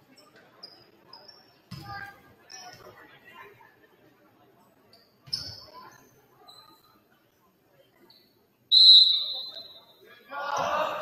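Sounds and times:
shoes squeaking on gym floor: 4.9 - 7.0
referee's whistle blast: 8.7 - 9.9.

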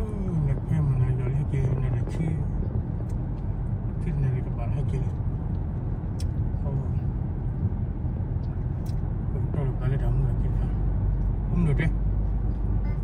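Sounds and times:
car driving road noise: 0.0 - 13.0.

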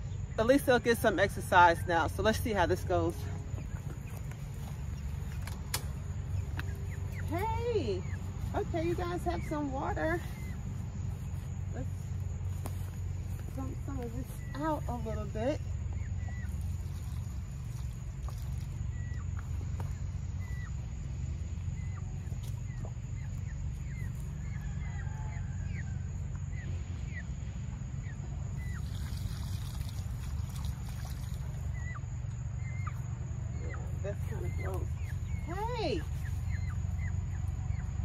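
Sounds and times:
steady low rumble: 0.0 - 38.0
high bird chirps: 2.0 - 27.4, 31.2 - 38.0.

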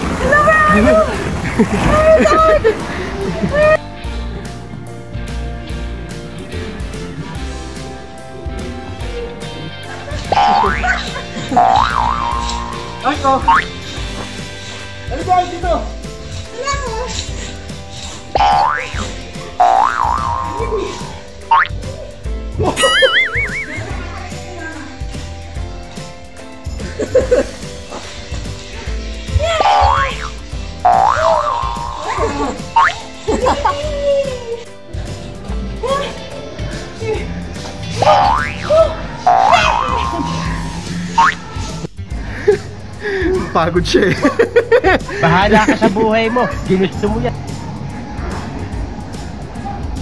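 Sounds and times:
background music with steady beat: 0.0 - 50.0.

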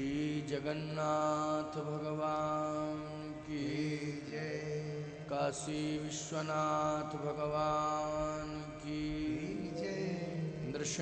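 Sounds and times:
amplified voice chanting: 0.0 - 11.0.

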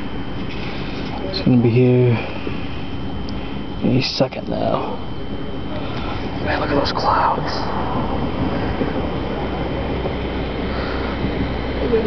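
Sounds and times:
gusty wind on microphone: 5.0 - 12.0.

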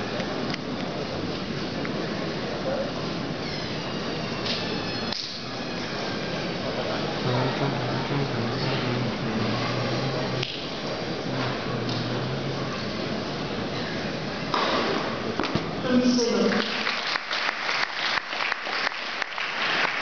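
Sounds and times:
crowd murmur: 0.0 - 15.8
low steady hum: 0.0 - 16.8.

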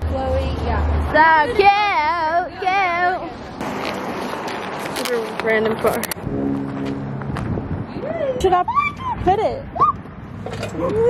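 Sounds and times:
low vehicle horn: 6.2 - 7.4.

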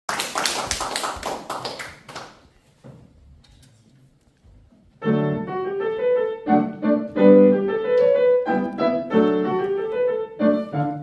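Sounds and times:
audience applause: 0.1 - 2.3.

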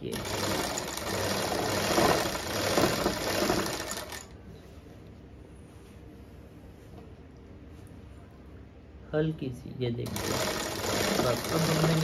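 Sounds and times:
sewing machine running: 0.0 - 4.3, 10.0 - 12.0.

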